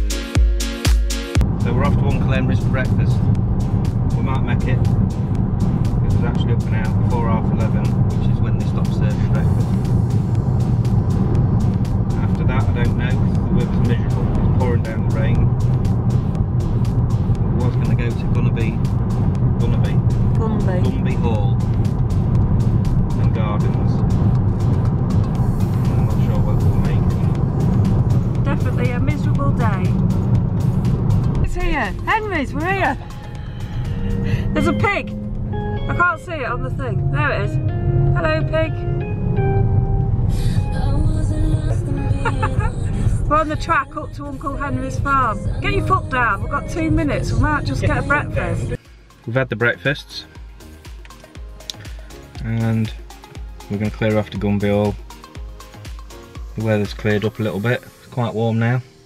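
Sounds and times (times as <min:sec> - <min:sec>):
background music with voice: 0:00.0 - 0:39.1, 0:40.3 - 0:59.0
car road noise inside cabin: 0:01.4 - 0:48.8.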